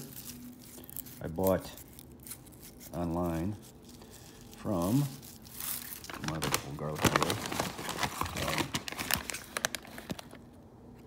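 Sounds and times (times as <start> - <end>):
paper envelope crinkling: 0.0 - 10.5.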